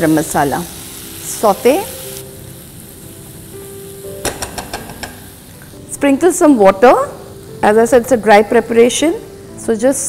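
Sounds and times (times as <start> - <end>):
food sizzling in a frying pan: 0.0 - 10.0
soft background music: 0.0 - 10.0.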